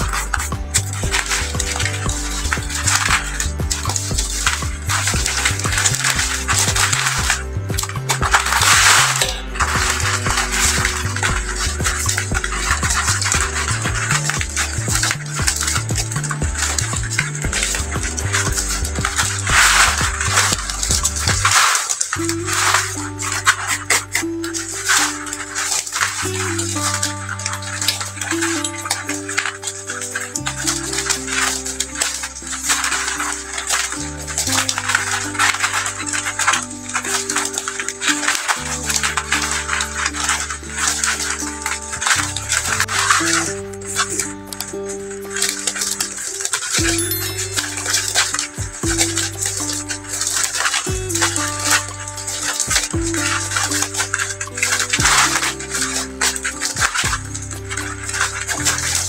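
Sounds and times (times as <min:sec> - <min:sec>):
background music with bass line: 0:00.0 - 0:59.0
plastic strapping bands crackling: 0:00.0 - 0:59.0.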